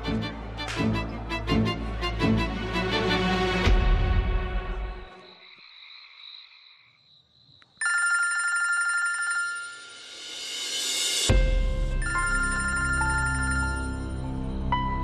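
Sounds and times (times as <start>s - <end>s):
mobile phone ringtone: 7.8s - 10.3s, 12.0s - 14.4s.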